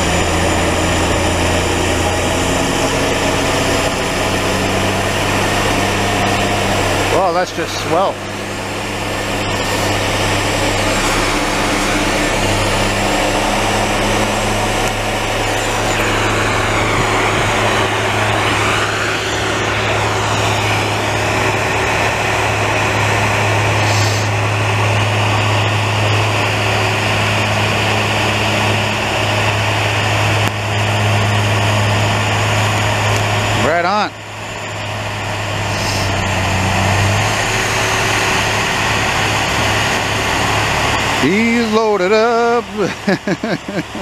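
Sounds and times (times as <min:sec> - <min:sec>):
snowblower engine droning: 0:00.0 - 0:44.0
wavering whine: 0:00.0 - 0:44.0
rushing hiss of blown snow: 0:23.8 - 0:24.4, 0:35.6 - 0:36.2.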